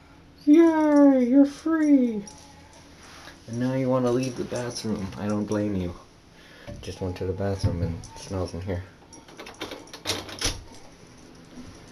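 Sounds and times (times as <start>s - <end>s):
doorknob and latch clicking: 9.2s - 10.7s.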